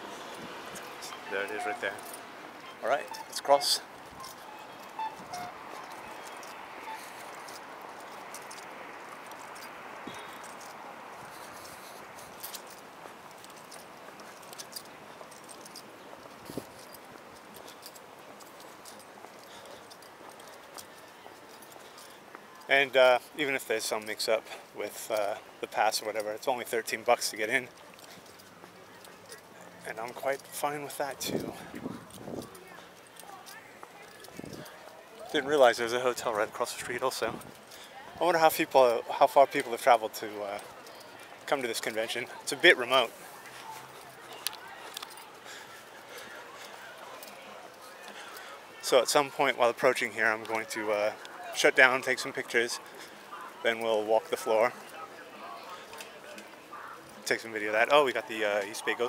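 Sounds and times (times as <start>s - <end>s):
footsteps on pavement: 0.0s - 23.4s, 24.0s - 59.0s
street noise hiss: 0.0s - 59.0s.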